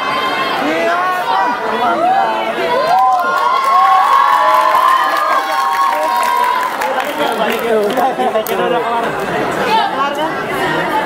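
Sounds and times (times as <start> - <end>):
crowd chattering and calling out: 0.0 - 11.0.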